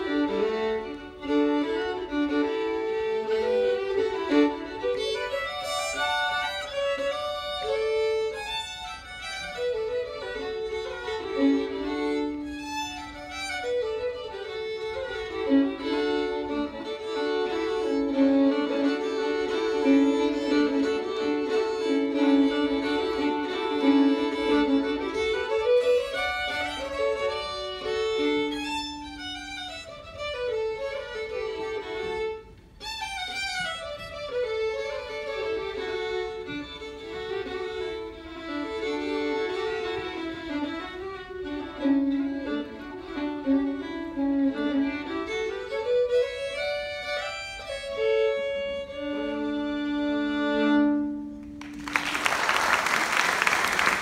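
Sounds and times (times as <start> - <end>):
two fiddles playing a tune: 0.0 - 52.0.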